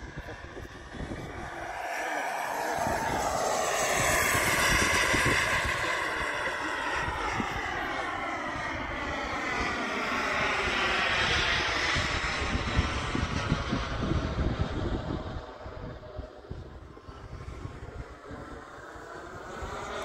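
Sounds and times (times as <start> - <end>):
model jet engine whine: 0.0 - 20.0
wind buffeting microphone: 0.0 - 20.0.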